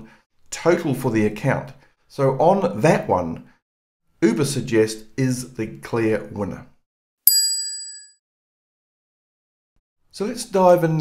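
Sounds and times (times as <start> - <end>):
bright bell-like ding: 7.3 - 8.2.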